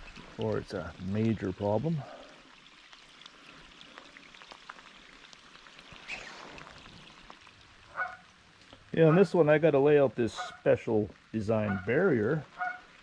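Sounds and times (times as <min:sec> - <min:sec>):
light rain on lake water: 0:00.0 - 0:13.0.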